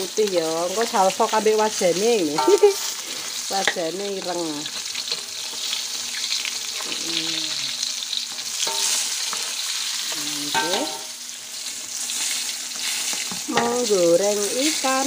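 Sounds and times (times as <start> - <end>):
fish sizzling in hot oil: 0.0 - 15.0
spatula scraping a wok: 8.1 - 13.7.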